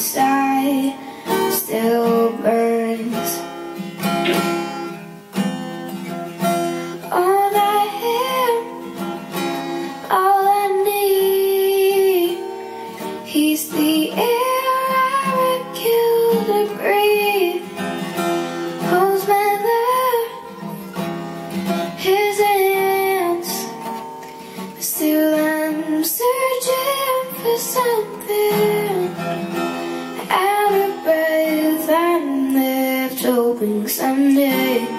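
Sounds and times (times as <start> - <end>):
girl singing: 0.0 - 3.5, 7.0 - 18.0, 18.8 - 21.0, 21.8 - 23.9, 24.8 - 34.9
acoustic guitar: 0.0 - 34.9.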